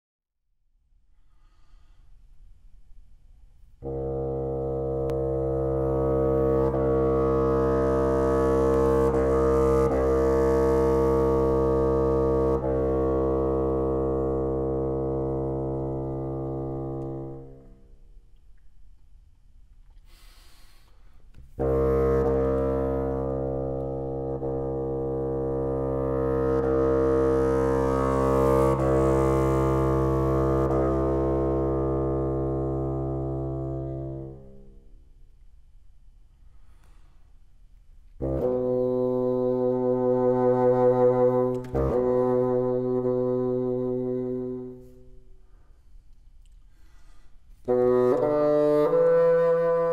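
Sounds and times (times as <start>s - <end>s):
bassoon low sustained note: 3.8s - 17.8s, 21.4s - 34.8s, 38.2s - 45.6s, 47.6s - 49.9s.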